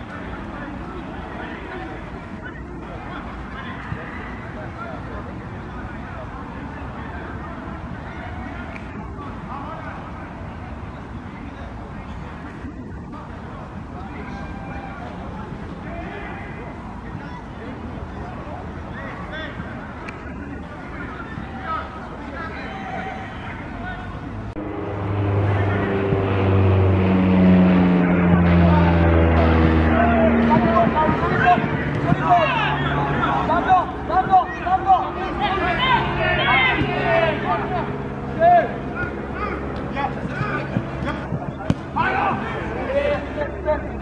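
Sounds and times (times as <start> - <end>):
indistinct distant voices: 0.0 - 44.0
low mechanical drone: 23.8 - 44.0
people shouting: 29.9 - 37.7, 38.3 - 43.3.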